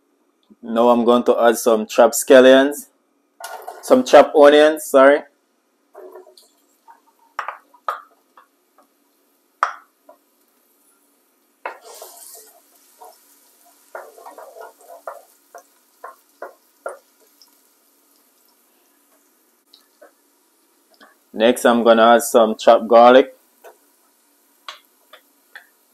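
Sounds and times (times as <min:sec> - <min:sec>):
spoon scraping pot: 0:06.0 - 0:07.6, 0:11.6 - 0:17.3.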